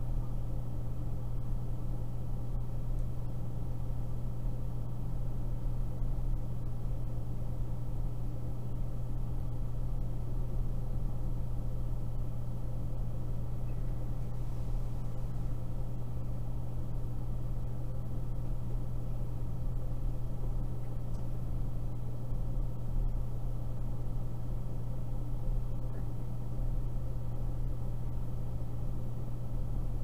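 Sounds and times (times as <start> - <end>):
phone line hum and hiss: 0.0 - 30.0.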